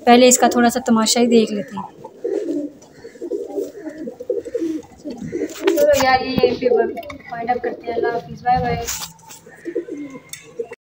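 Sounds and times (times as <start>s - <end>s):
pigeons cooing: 0.0s - 10.8s.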